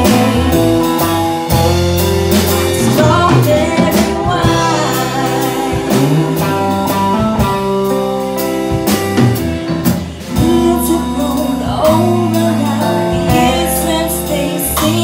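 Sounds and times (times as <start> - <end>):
woman singing lead: 0.0 - 8.2, 10.2 - 15.0
live country band playing: 0.0 - 15.0.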